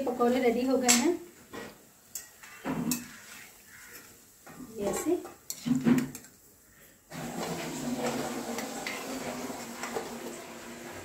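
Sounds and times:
metal spoon scraping a pan: 0:01.5 - 0:04.2, 0:04.8 - 0:06.4, 0:07.4 - 0:10.1.

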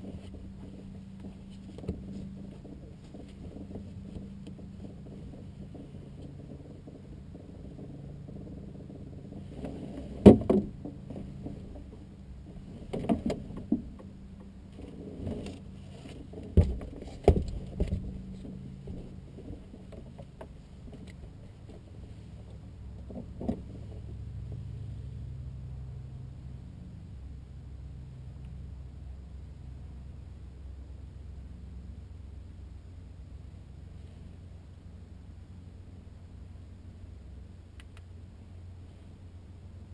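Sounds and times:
knocks and rattles of handling: 0:00.0 - 0:24.6
steady low hum: 0:00.0 - 0:39.9.

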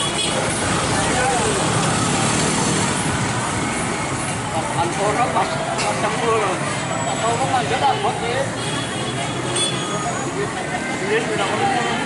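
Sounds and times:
people chattering and calling out: 0:00.0 - 0:12.0
street and traffic noise: 0:00.0 - 0:12.0.

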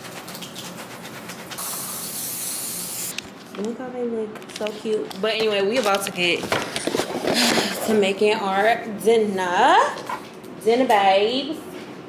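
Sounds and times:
aerosol spray hissing: 0:01.6 - 0:03.1.

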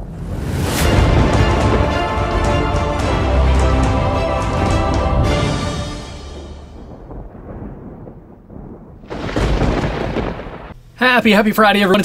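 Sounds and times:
loud thunderclap: 0:00.0 - 0:10.8
low thunder rumble: 0:00.0 - 0:10.9
intro music: 0:00.1 - 0:07.6.

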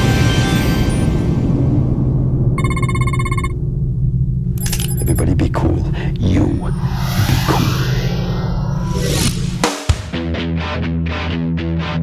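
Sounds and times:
low rumble: 0:01.4 - 0:09.6
telephone ringing: 0:02.6 - 0:03.6.

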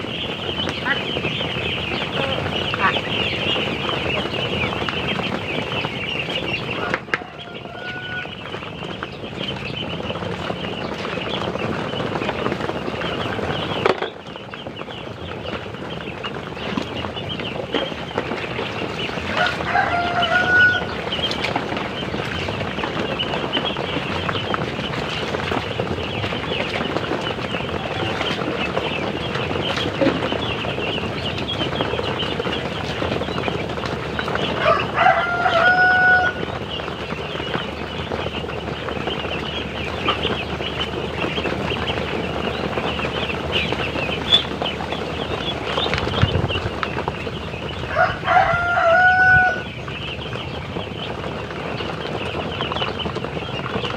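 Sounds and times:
ducklings peeping in chorus: 0:00.0 - 0:53.9
rooster crowing: 0:06.7 - 0:08.5, 0:19.3 - 0:21.0, 0:34.5 - 0:36.6, 0:47.8 - 0:49.7.

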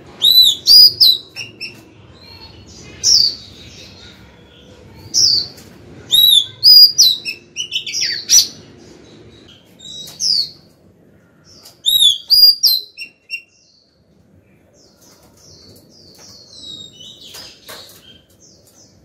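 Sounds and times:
bird singing whistled notes: 0:11.8 - 0:13.7.

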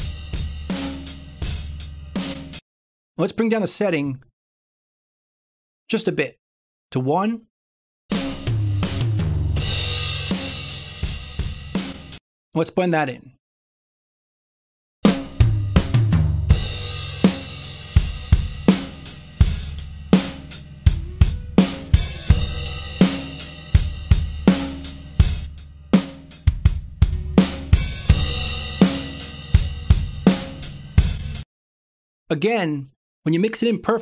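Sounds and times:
distorted compressed drums: 0:00.0 - 0:02.5, 0:15.1 - 0:31.4
drum kit playing a beat: 0:00.0 - 0:02.6, 0:08.1 - 0:12.2, 0:15.0 - 0:31.4.

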